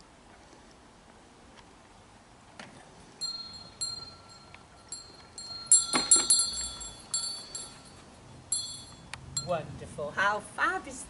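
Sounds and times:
hand bell ringing: 0:03.2 - 0:09.5.

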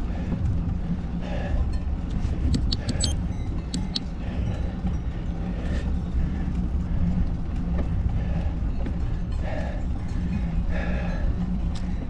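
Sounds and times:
wind and road noise: 0:00.0 - 0:12.0
sharp clicks: 0:02.5 - 0:04.0.

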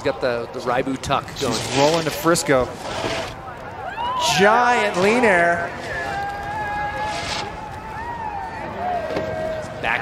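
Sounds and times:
steady outdoor hiss: 0:00.0 - 0:10.0
voices calling and whooping: 0:03.4 - 0:10.0.

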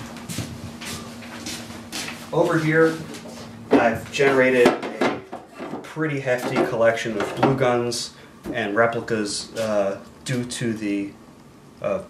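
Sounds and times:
footsteps on hardwood floor: 0:00.0 - 0:05.8
faint steady hum: 0:00.0 - 0:12.0.

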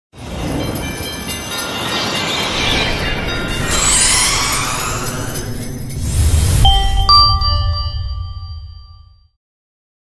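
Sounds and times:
high ringing tones: 0:01.7 - 0:09.2
dense rushing sound: 0:02.4 - 0:08.5
low rumble: 0:02.6 - 0:09.1.

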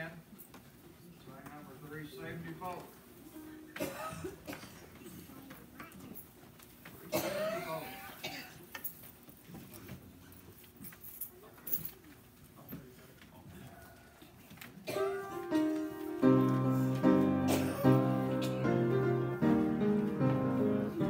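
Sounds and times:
shuffling: 0:08.6 - 0:21.0.

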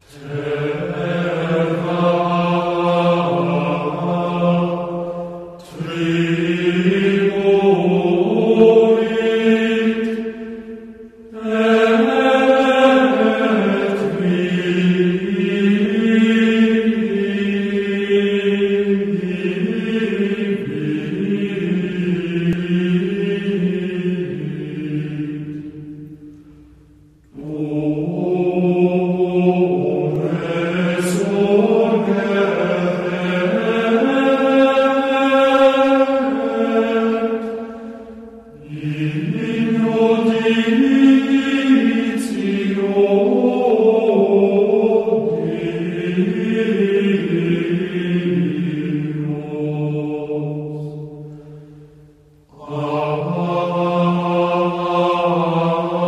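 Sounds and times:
low voices chanting: 0:00.0 - 0:56.0.

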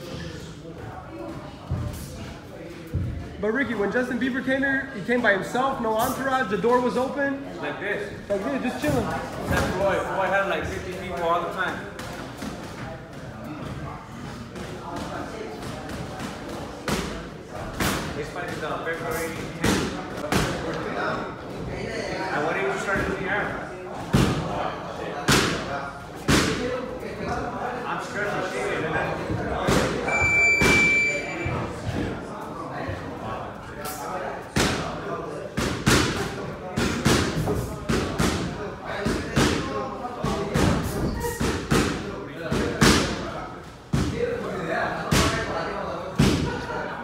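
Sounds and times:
background talk: 0:00.0 - 0:47.0.

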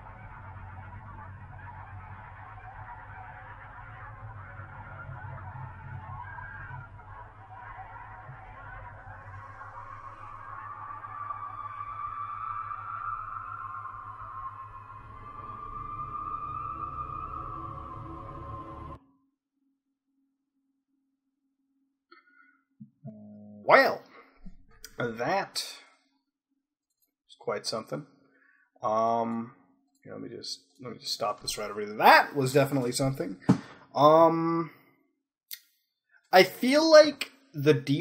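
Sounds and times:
low rumbling drone: 0:00.0 - 0:19.0.

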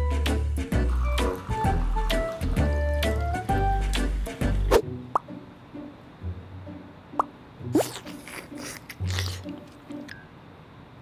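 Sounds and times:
background music: 0:00.0 - 0:10.4.

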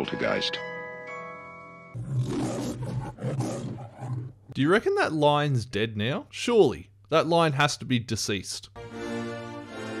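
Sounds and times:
chime-like musical chord: 0:00.0 - 0:02.0
lion roar: 0:02.0 - 0:04.6.

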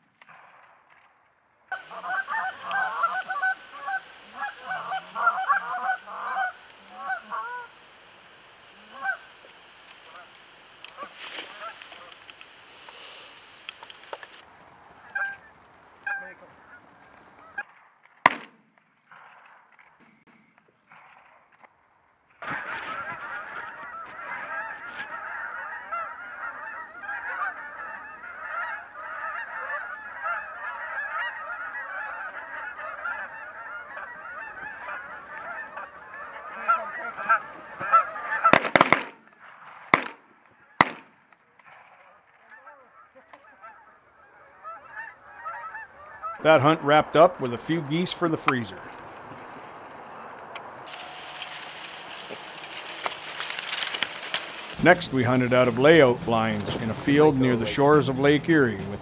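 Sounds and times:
geese honking: 0:01.7 - 0:17.7, 0:22.4 - 0:41.1, 0:42.1 - 0:59.0
shotgun shots: 0:17.8 - 0:21.5, 0:38.4 - 0:42.1.

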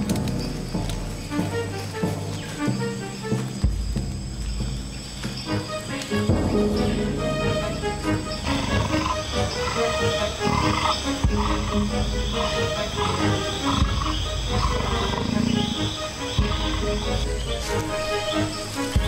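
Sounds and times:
film music: 0:00.0 - 0:19.0
jaguar growling low: 0:07.8 - 0:17.1.

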